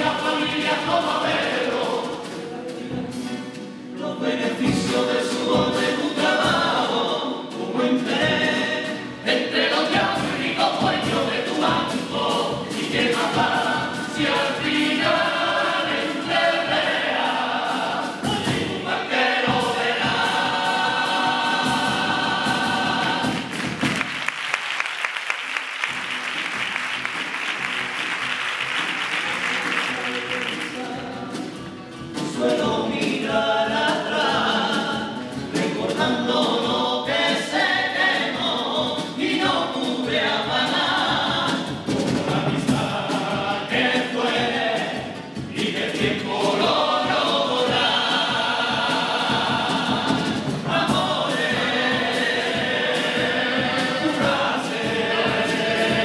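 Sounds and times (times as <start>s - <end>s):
chorus singing in harmony: 0.0s - 25.0s, 25.9s - 56.0s
audience applauding: 23.2s - 31.0s.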